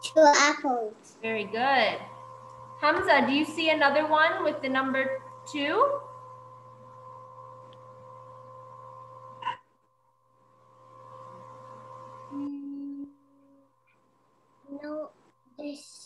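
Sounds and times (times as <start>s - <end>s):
electrical hum and whine: 0.0s - 16.0s
short low steady tone: 11.3s - 13.7s.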